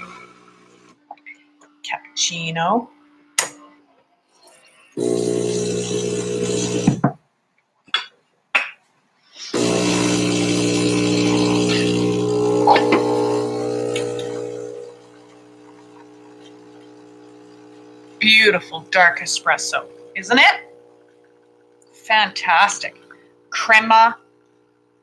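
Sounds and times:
espresso machine motor hum: 0:00.0 - 0:01.0, 0:05.0 - 0:07.1, 0:09.6 - 0:25.0
quiet pump hum: 0:09.6 - 0:25.0.

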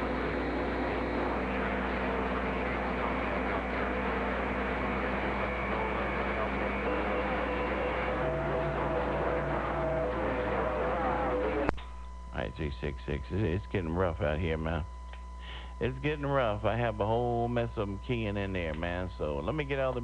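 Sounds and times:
radio static hiss: 0:00.0 - 0:20.0.

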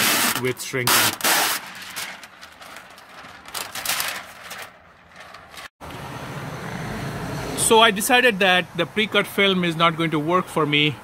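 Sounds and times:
plastic film crackling and rustling: 0:00.0 - 0:05.7.

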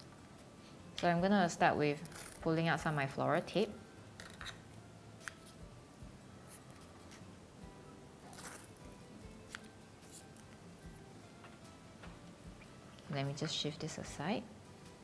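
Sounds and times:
soft background music: 0:00.0 - 0:15.0.

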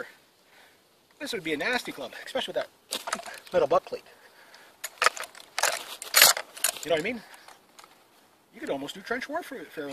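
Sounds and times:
rifle and sling rattling: 0:02.9 - 0:04.0, 0:04.6 - 0:08.1.

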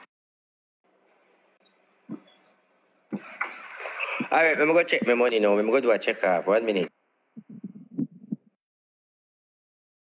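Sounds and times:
muffled low thumps and knocks: 0:07.4 - 0:08.5.

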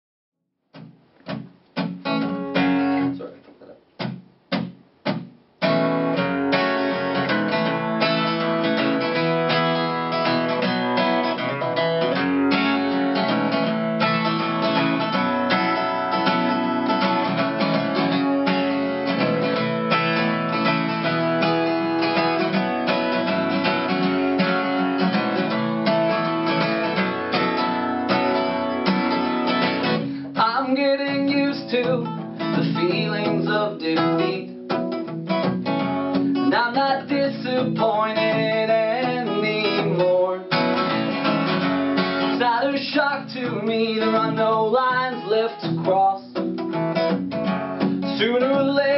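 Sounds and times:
acoustic guitar strumming: 0:00.7 - 0:48.9.

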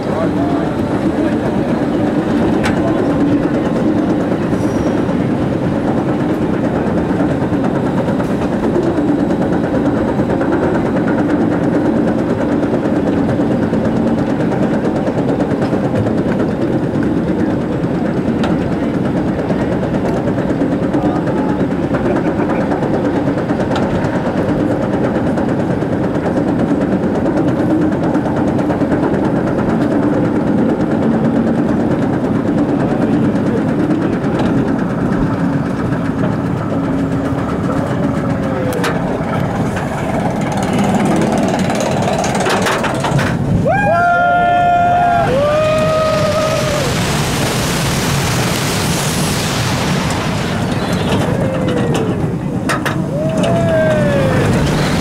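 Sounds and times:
roller coaster lift chain clatter: 0:00.0 - 0:55.0.

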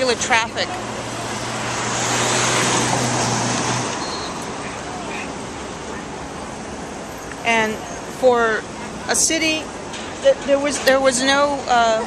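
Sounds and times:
vehicle passing by: 0:00.1 - 0:06.0.

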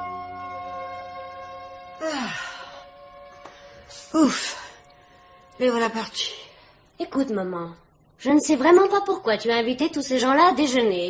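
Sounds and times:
sustained music notes: 0:00.0 - 0:06.6.

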